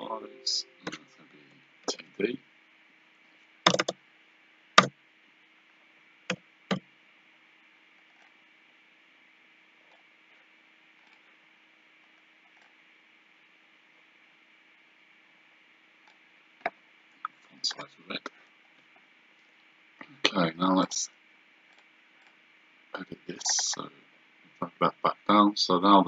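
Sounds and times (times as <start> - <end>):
faint hum and hiss: 0.0 - 26.0
computer keys clicking: 3.7 - 4.0.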